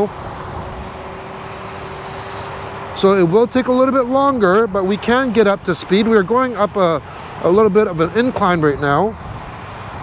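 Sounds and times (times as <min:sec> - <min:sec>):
wind and tyre rush: 0:00.0 - 0:10.0
electric scooter motor hum: 0:00.4 - 0:03.0
faint high whine: 0:01.4 - 0:02.8.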